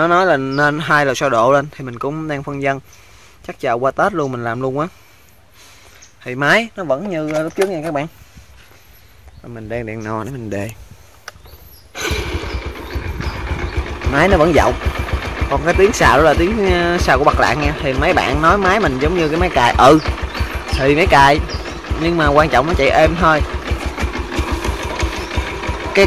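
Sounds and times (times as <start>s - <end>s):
electric starter cranking: 12.0s - 26.0s
motorcycle engine idling: 12.0s - 26.0s.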